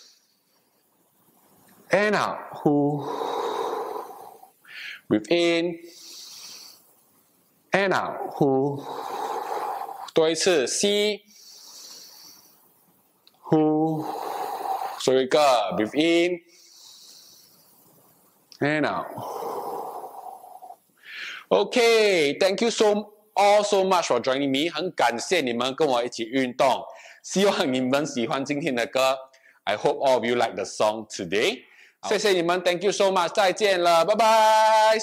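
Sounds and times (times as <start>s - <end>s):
person exhaling through mouth: 2.9s - 5.0s, 8.2s - 10.1s, 13.9s - 15.0s, 19.1s - 21.4s
short breath in: 3.0s - 5.1s, 5.9s - 6.9s, 8.2s - 10.1s, 11.3s - 12.6s, 14.0s - 15.0s, 16.5s - 17.9s, 19.1s - 21.5s.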